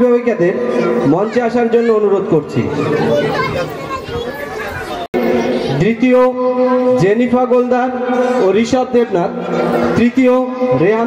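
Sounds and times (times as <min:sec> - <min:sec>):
babble of voices: 0:00.5 - 0:07.0, 0:07.9 - 0:11.0.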